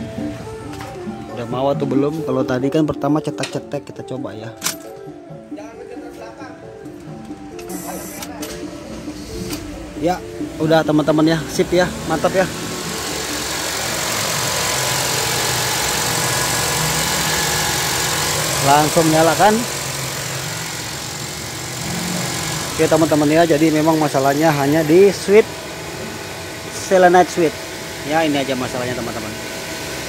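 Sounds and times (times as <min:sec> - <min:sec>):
loud background music: 0:00.0 - 0:30.0
car engine idling: 0:06.8 - 0:30.0
starter motor cranking engine: 0:07.2 - 0:30.0.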